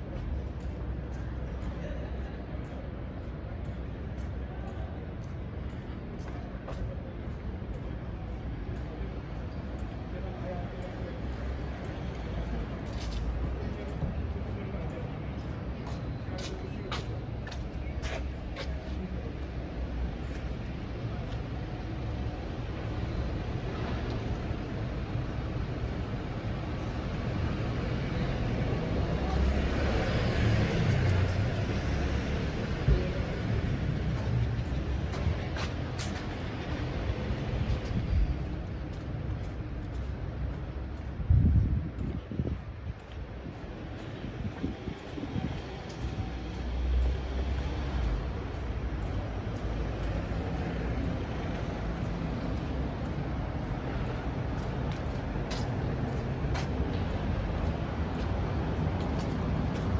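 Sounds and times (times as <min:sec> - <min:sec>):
street traffic rumble: 0:00.0 - 0:59.9.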